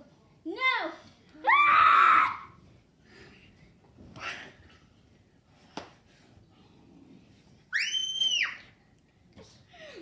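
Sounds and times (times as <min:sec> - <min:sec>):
girl squealing scream: 0:01.5 - 0:02.5.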